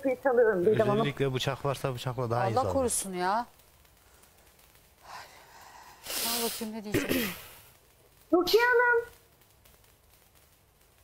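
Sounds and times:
person breathing: 0:05.0 - 0:06.7.

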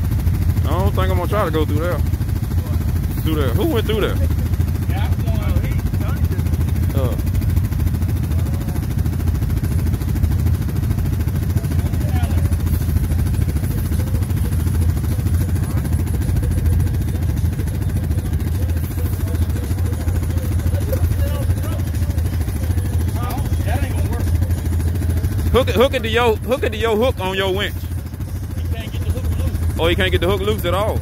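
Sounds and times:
atv engine idling: 0:00.0 - 0:31.0.

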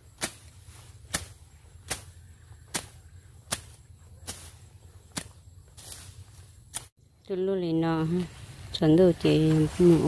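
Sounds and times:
brush knife slashing weeds: 0:00.0 - 0:07.0.

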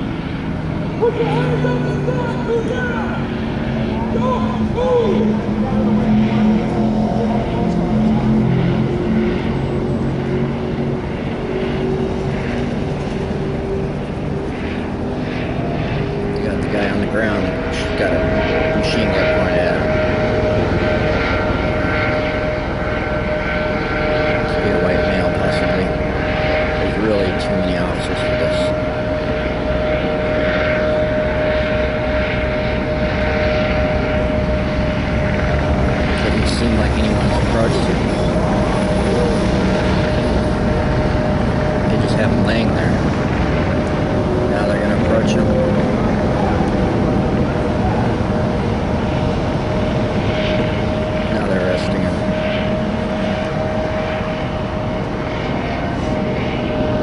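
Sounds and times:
helicopter engine drone: 0:00.0 - 0:57.0.

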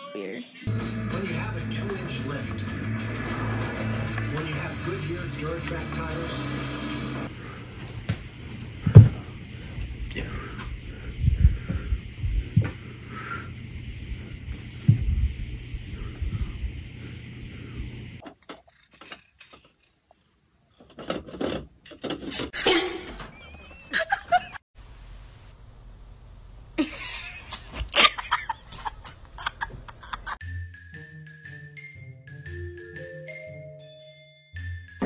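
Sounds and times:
background hum: 0:00.8 - 0:30.4.

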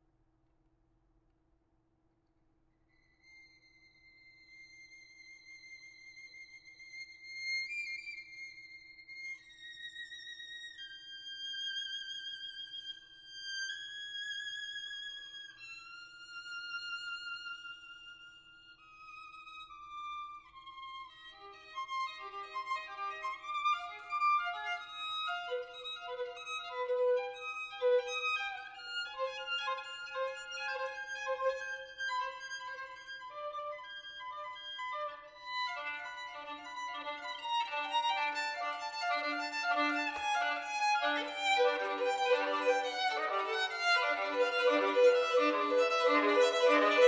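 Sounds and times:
solo violin playing: 0:03.3 - 0:47.0.

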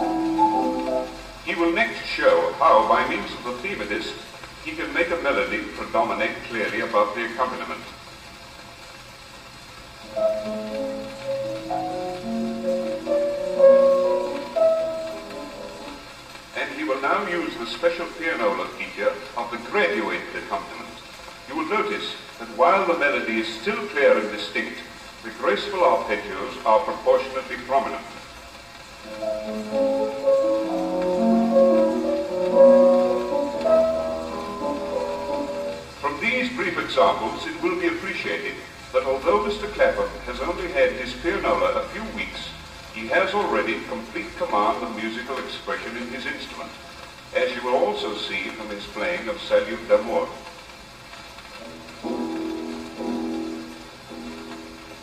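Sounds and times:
player piano playing: 0:00.0 - 0:07.8, 0:10.0 - 0:21.0, 0:21.6 - 0:46.6, 0:51.4 - 0:55.0
record surface crackle: 0:00.0 - 0:55.0.

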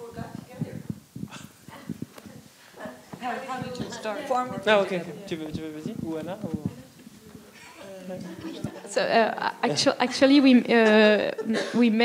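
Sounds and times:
low indistinct voices: 0:00.0 - 0:11.4
light knocks and shuffles: 0:00.3 - 0:08.8
footsteps: 0:00.3 - 0:08.9.

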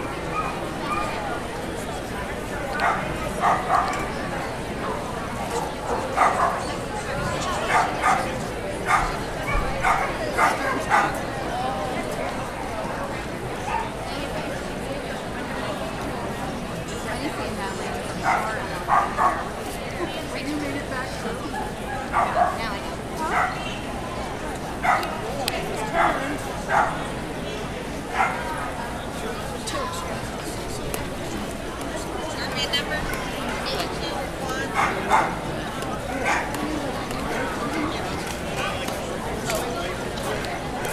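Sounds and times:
murmur of voices: 0:00.0 - 0:40.9
dog barking: 0:00.3 - 0:01.1, 0:02.8 - 0:04.0, 0:05.9 - 0:06.7, 0:07.7 - 0:08.3, 0:08.9 - 0:11.2, 0:18.2 - 0:19.5, 0:22.1 - 0:22.6, 0:23.3 - 0:23.7, 0:24.8 - 0:25.1, 0:26.0 - 0:27.0, 0:28.2 - 0:28.5, 0:34.8 - 0:35.4.

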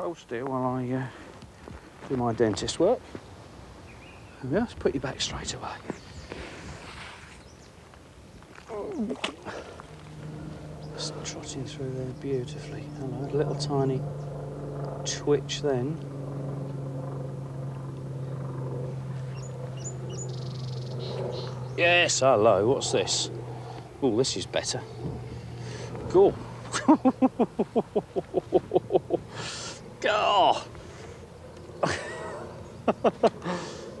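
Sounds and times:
low hum: 0:02.3 - 0:34.0
songbird chirping: 0:03.8 - 0:04.6, 0:19.2 - 0:22.1
man laughing: 0:26.2 - 0:30.7, 0:31.8 - 0:33.9.

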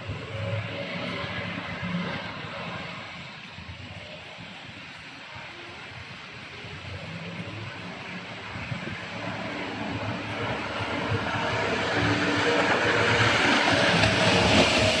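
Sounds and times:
rush of churned water: 0:01.2 - 0:15.0
jet boat engine: 0:08.5 - 0:15.0.

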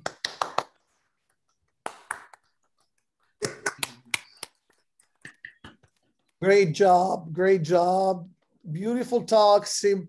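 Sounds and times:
hand claps: 0:00.0 - 0:00.8, 0:01.7 - 0:02.6, 0:03.4 - 0:06.0.

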